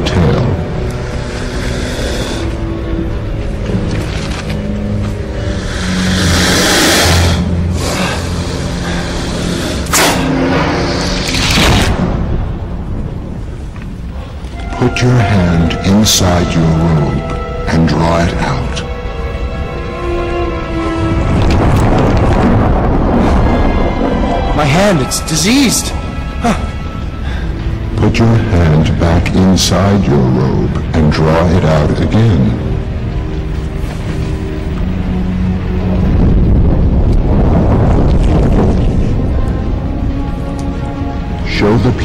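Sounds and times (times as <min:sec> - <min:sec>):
dramatic film score: 0:00.0 - 0:42.0
held musical note: 0:14.1 - 0:28.7.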